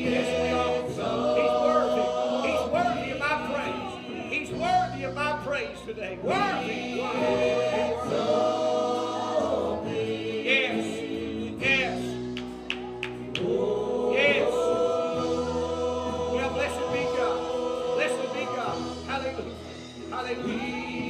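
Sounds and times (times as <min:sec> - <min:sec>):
voices singing together: 0:00.0 - 0:05.2, 0:06.0 - 0:21.0.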